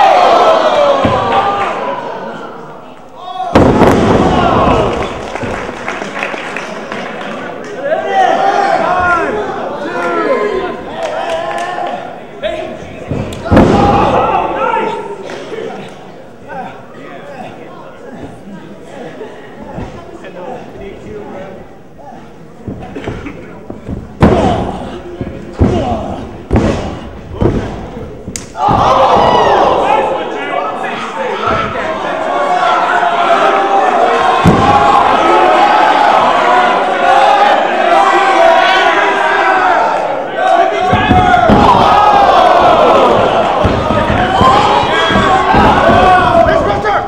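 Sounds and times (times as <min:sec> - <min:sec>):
crowd cheering and shouting: 0:00.0 - 0:15.7, 0:28.4 - 0:47.0
loud impact: 0:03.5 - 0:05.0, 0:13.1 - 0:14.2, 0:40.8 - 0:47.0.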